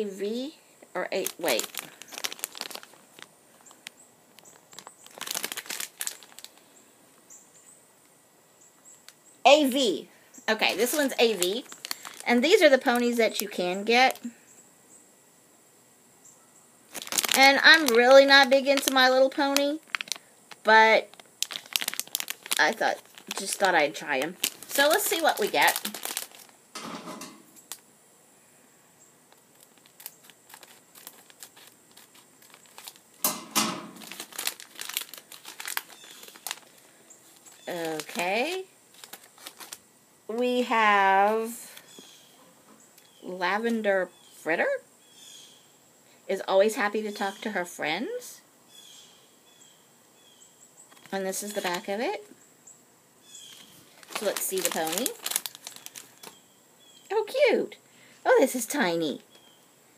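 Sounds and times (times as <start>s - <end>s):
plastic bag crinkling and tearing: 1.0s - 6.6s, 10.5s - 14.3s, 16.9s - 27.8s, 29.3s - 39.8s, 50.9s - 51.9s, 53.4s - 56.4s.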